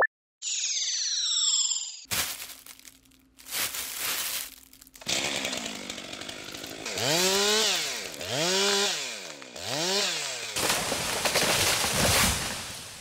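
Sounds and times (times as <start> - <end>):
chainsaw revving: 5.0 - 12.6.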